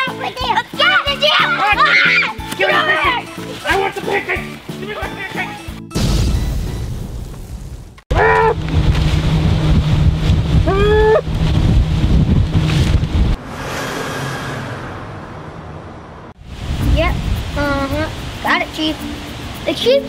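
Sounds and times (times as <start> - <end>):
boat motor humming: 8.1 - 14.0
wind buffeting microphone: 8.4 - 13.4, 16.4 - 19.7
rushing water: 16.4 - 20.0.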